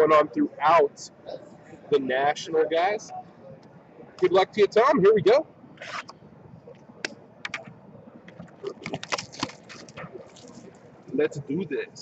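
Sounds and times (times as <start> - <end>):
plastic wrap and cardboard crackling: 8.5 - 10.8.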